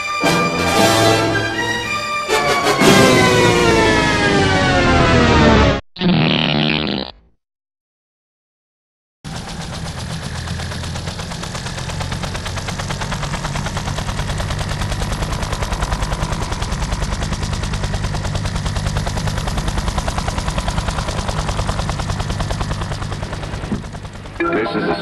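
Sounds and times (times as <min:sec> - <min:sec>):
low steady drone: 0:00.0 - 0:05.6, 0:09.3 - 0:25.0
rapid chopping pulse: 0:09.3 - 0:24.4.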